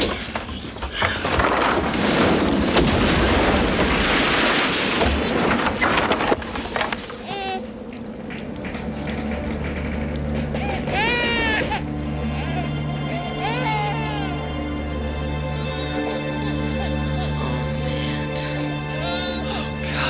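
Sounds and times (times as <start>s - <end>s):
crashes: 0.0s - 12.2s
low sustained music: 7.2s - 20.0s.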